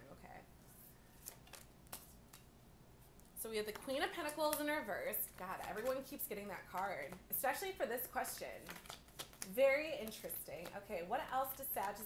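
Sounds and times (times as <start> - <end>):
cards clicking on stone: 3.7 - 7.2, 8.0 - 12.0.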